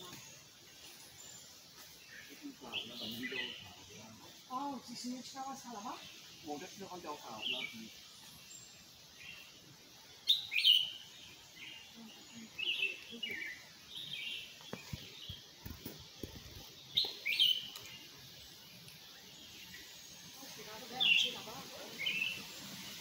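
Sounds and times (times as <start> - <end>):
forest birds chirping: 0.0 - 23.0.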